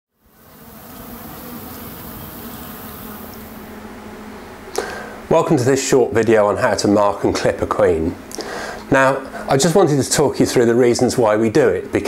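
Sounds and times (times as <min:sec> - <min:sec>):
honeybees buzzing: 0:00.2 - 0:05.3.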